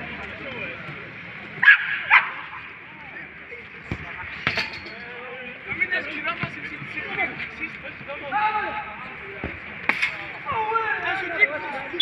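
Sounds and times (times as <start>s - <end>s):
dog barking: 1.6s - 2.4s.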